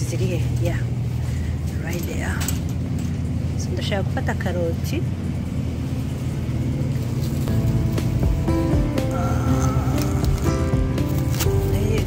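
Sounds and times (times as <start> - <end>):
steady low hum: 0.0 - 12.0
background music: 7.4 - 12.0.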